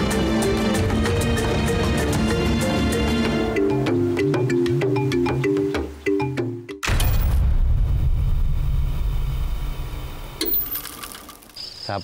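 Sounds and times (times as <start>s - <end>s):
low rumbling mechanical noise: 7.7s - 11.5s
insect chirping: 10.4s - 12.0s.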